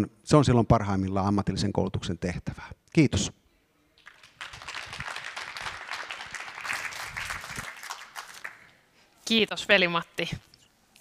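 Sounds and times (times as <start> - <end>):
audience applauding: 4.0 - 8.8.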